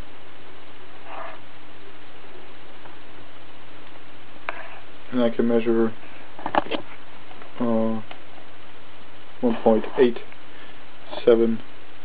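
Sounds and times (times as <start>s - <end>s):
background hiss: 0.0s - 12.0s
faint low hum: 0.0s - 12.0s.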